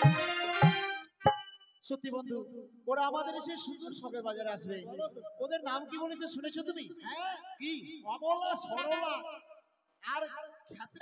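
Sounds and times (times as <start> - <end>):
live band music: 0.0 - 1.5
man speaking: 1.8 - 9.4, 10.0 - 11.0.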